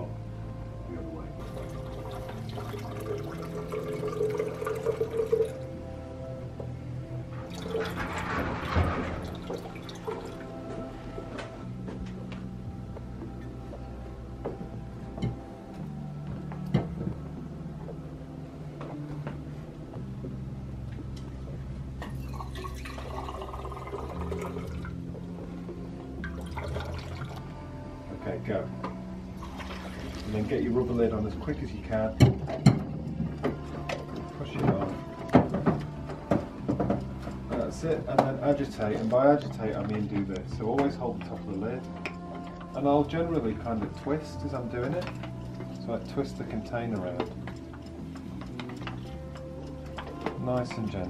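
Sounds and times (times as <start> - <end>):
background music: 0.0 - 51.0
liquid pouring into a glass cylinder: 1.4 - 5.6, 7.5 - 10.5, 22.2 - 25.0, 26.2 - 27.5, 29.4 - 30.3.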